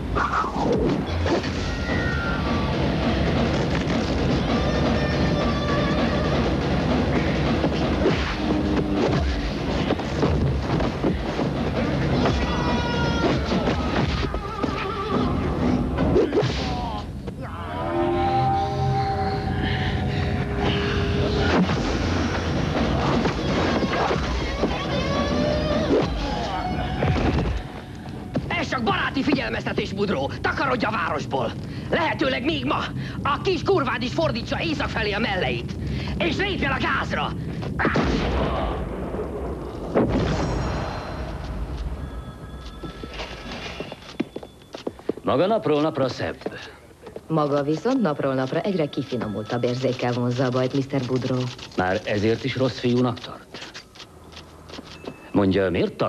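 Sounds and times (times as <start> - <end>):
film soundtrack music: 0.0 - 37.0
high wavering cry: 16.2 - 21.5
heavy booms with rumbling decay: 37.8 - 41.7.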